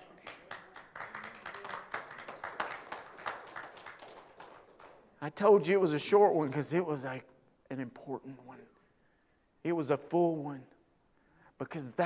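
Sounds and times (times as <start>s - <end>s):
people clapping: 0.0s - 5.3s.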